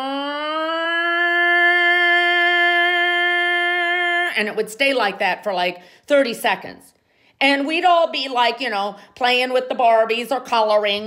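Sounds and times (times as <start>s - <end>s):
woman imitating a siren: 0.0s - 4.4s.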